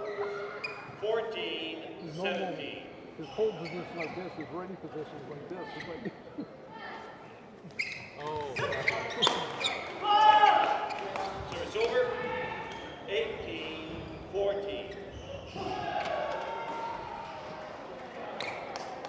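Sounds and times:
sneakers squeaking on court: 0.0 - 1.0, 3.0 - 4.8, 7.2 - 10.0, 18.3 - 19.0
echoing voices: 9.9 - 19.0.

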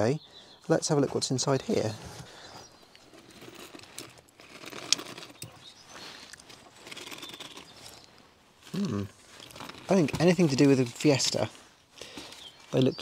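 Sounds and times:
paper and plastic bags rustling: 9.2 - 13.0.

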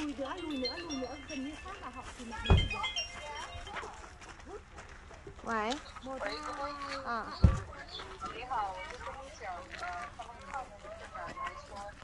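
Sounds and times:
people talking: 0.0 - 12.0
low thump: 2.4 - 2.8.

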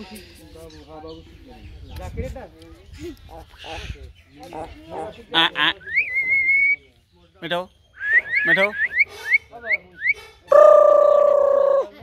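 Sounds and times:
bird whistling: 5.8 - 6.8, 7.9 - 10.6.

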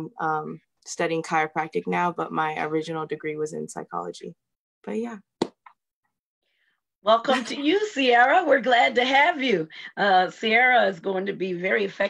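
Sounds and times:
woman speaking over video call: 0.0 - 5.3, 7.0 - 12.0.

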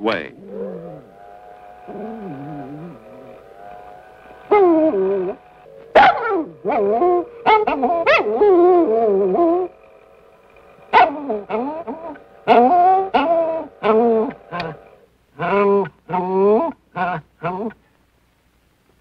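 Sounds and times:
small dog whining and yipping: 4.5 - 9.7, 10.9 - 14.8.

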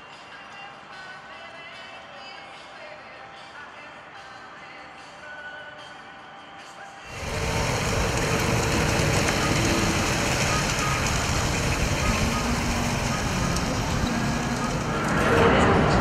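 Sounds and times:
model train running on rails: 7.1 - 16.0.

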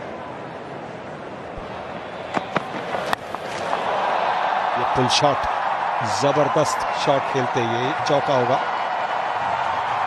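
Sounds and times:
stadium crowd noise: 0.0 - 10.0
bat striking ball: 2.3 - 3.9.

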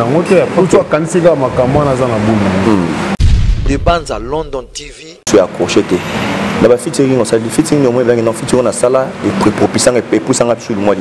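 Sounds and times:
man talking: 0.0 - 11.0
voice over low rumble: 3.6 - 5.2.

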